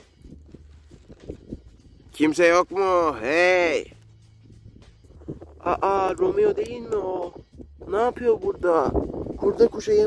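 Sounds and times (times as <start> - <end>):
low rumble: 3.0 - 9.4.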